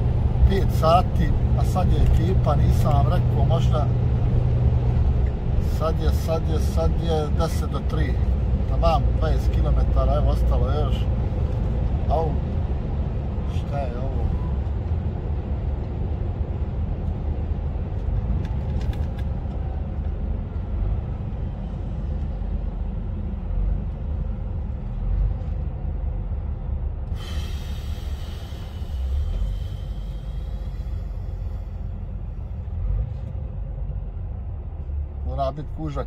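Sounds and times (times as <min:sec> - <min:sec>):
truck engine and road rumble: 0:00.0 - 0:36.0.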